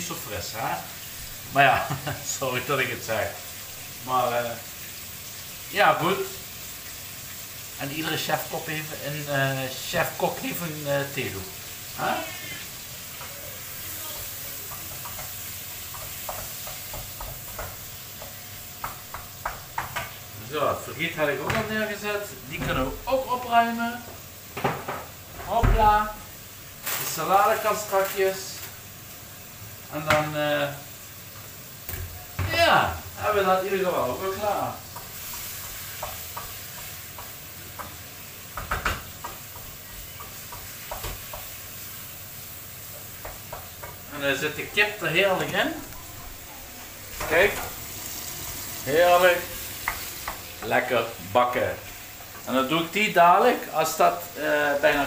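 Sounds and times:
food sizzling in frying pan: 0.0s - 55.0s
spatula scraping and tapping pan: 14.6s - 20.2s, 34.9s - 41.6s, 42.9s - 44.1s.

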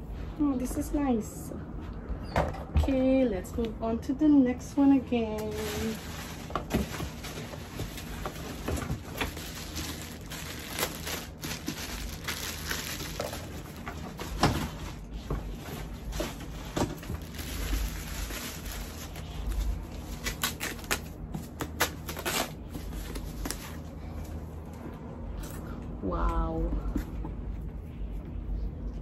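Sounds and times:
plastic wrapping crinkling: 5.3s - 23.8s.

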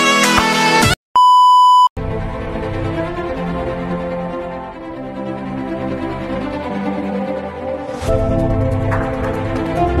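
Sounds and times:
steady electronic beep: 1.2s - 1.9s.

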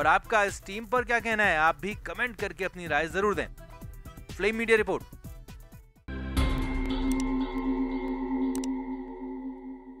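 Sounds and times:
electronic ringing tone: 6.6s - 10.0s.

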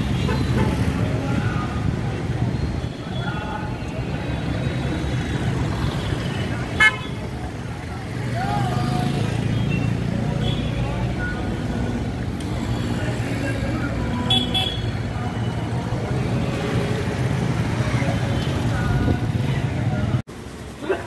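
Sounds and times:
motorcycles and cars passing: 0.0s - 21.0s
vehicle horn honks: 14.3s - 14.9s.

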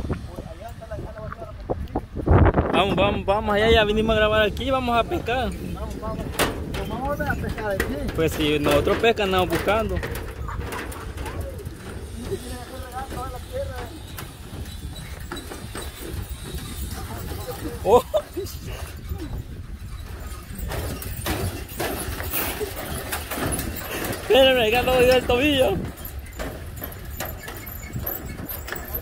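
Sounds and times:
wind rumbling on microphone: 0.0s - 29.0s
faint voices: 2.7s - 19.6s
footsteps on footbridge deck: 3.8s - 29.0s.

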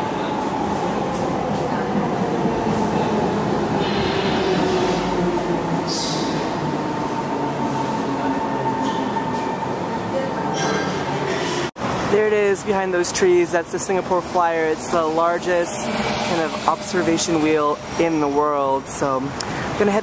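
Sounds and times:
metro train rumble and whine: 0.0s - 20.0s.

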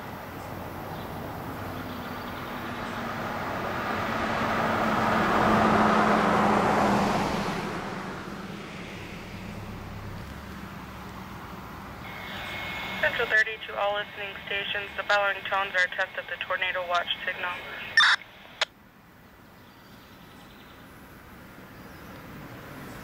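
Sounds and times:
vehicle road noise passing: 0.0s - 19.0s, 20.8s - 23.0s
steady high radio tone: 12.0s - 18.7s.

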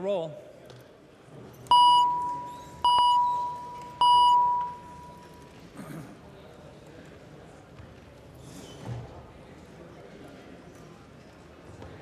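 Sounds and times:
murmur of voices: 4.8s - 12.0s.

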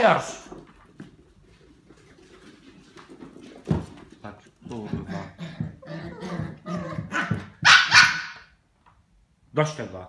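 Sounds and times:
small dogs growling and barking: 4.8s - 8.5s
high-pitched dog bark: 6.9s - 8.5s.

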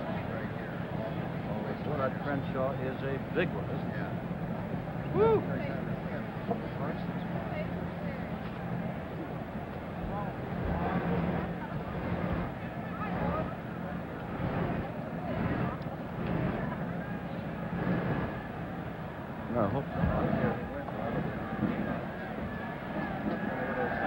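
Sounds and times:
stadium crowd murmuring and shouting: 0.0s - 24.0s
louder voices in crowd: 7.3s - 24.0s.

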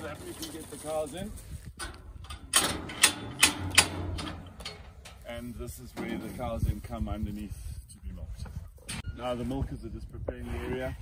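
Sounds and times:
metal cover clanking: 1.8s - 5.2s.

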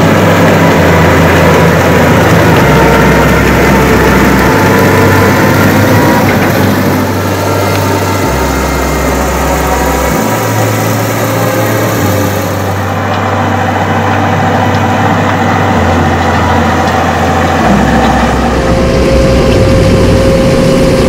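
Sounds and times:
tractor diesel engine under load: 0.0s - 21.0s.

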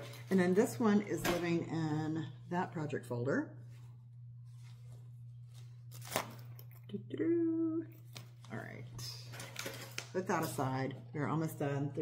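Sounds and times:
steady low hum: 0.0s - 12.0s
vinyl folder rustling and crinkling: 3.8s - 6.7s.

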